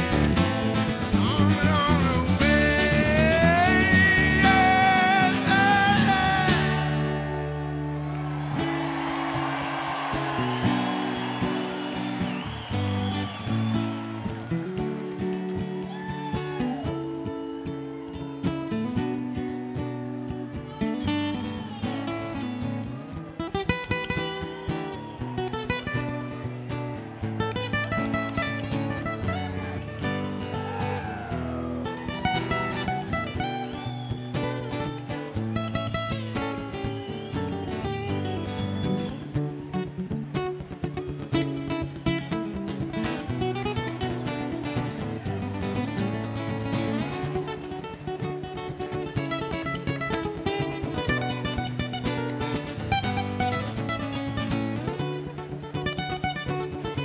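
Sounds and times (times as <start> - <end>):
strummed acoustic guitar: 0.0 - 15.9, 16.5 - 57.0
picked guitar lead lines: 0.0 - 57.0.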